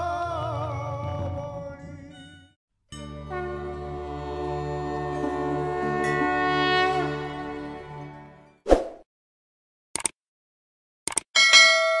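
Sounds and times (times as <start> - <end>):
bell ding: 11.4 - 12.0.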